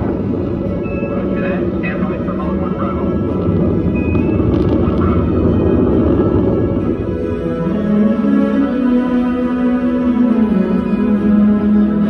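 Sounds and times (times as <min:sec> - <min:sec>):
background music: 0:00.0 - 0:12.0
deep rocket rumble: 0:00.0 - 0:12.0.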